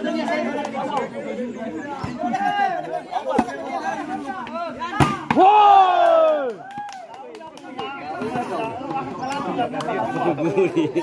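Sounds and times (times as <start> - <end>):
spectator chatter: 0.0 - 11.0
long loud shout: 5.4 - 7.0.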